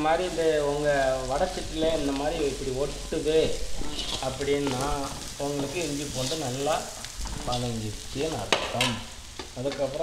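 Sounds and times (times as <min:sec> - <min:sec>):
vegetables sizzling in a wok: 0:00.0 - 0:10.0
metal spatula stirring in wok: 0:01.8 - 0:06.6.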